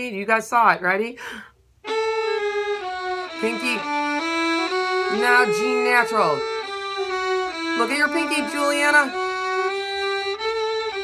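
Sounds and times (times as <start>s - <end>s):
violin and viola bowing: 1.8s - 11.0s.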